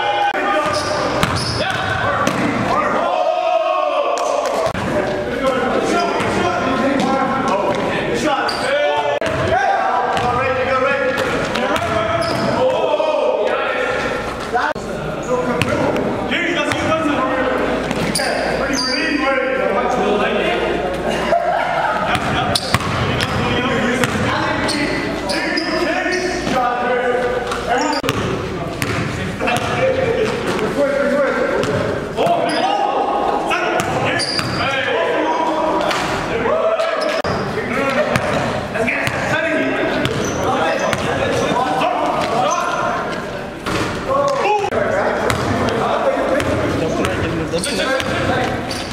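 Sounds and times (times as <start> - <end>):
players' voices echoing: 0.0 - 48.9
sneakers squeaking: 0.4 - 2.9, 4.2 - 12.9, 13.8 - 19.3, 22.0 - 48.9.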